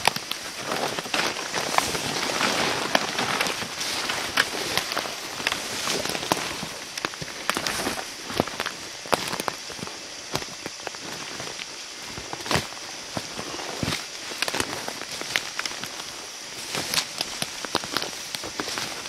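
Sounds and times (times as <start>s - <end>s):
dry grass and brush rustling: 0.0s - 19.0s.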